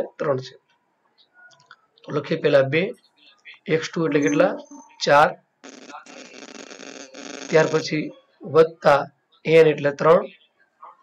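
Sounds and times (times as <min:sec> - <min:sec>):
man speaking: 0:02.1 - 0:06.4, 0:07.5 - 0:10.4.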